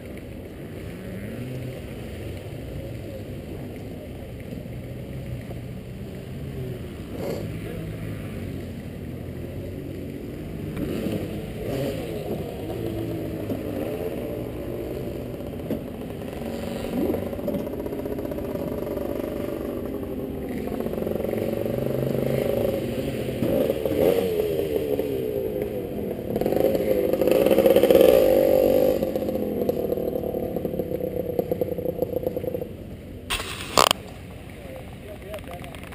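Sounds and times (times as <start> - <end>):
dirt bike engine revving: 10.4 - 25.6, 26.3 - 32.6, 33.3 - 34.1.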